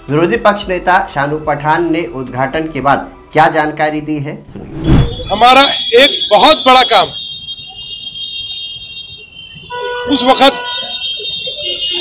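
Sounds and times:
high-pitched electronic tone: 4.6 - 5.5.

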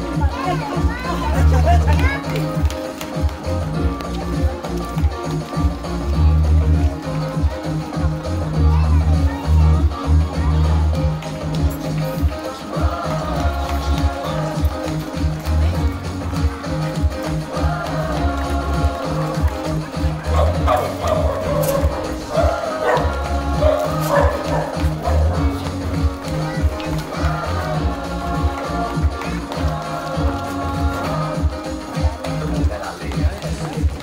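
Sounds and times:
music with heavy bass beat: 0.0 - 34.0.

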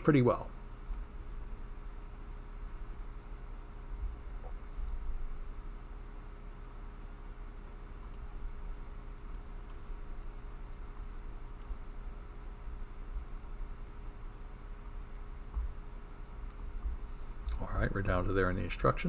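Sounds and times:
low background hum: 0.0 - 19.0
computer mouse clicks: 8.0 - 8.3.

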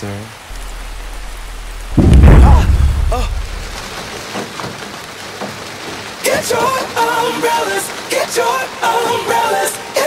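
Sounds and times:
steady rain pouring: 0.0 - 10.0
low thunder rumble: 0.5 - 4.1.

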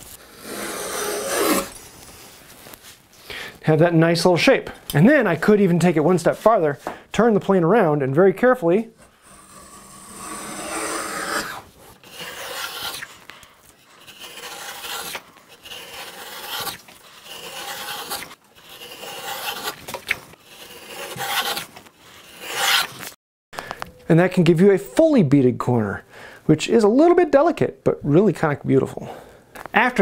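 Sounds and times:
hand plane shaving wood: 0.0 - 1.7, 9.1 - 23.1.

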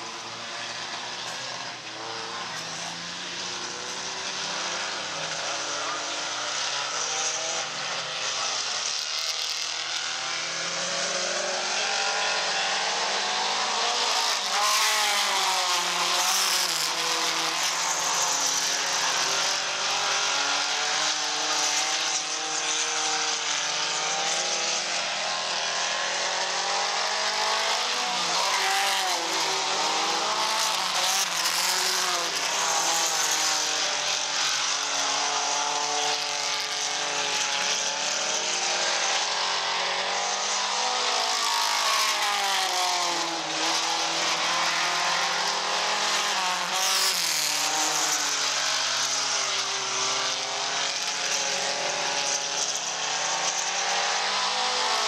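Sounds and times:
race car engines revving: 0.0 - 55.0.

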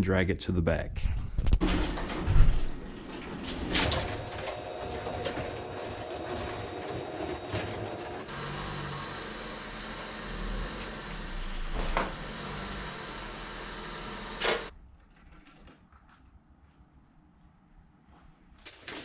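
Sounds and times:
garage door opener running: 1.6 - 14.7.

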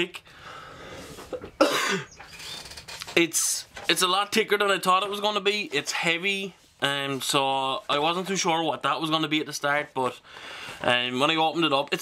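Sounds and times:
man coughing: 1.4 - 2.2.

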